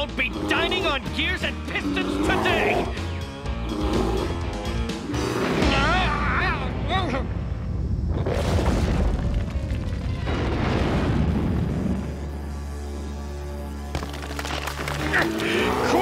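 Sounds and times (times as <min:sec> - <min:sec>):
orchestral background music: 0:00.0 - 0:06.6, 0:11.6 - 0:16.0
rumbling crash of tumbling rocks: 0:08.4 - 0:12.1, 0:13.9 - 0:15.6.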